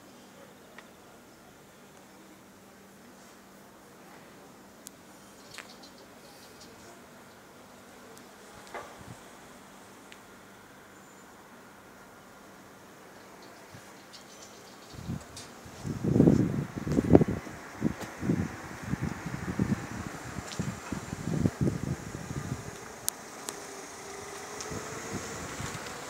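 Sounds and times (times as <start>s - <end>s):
wind buffeting microphone: 14.9s - 23.1s, 24.0s - 26.0s.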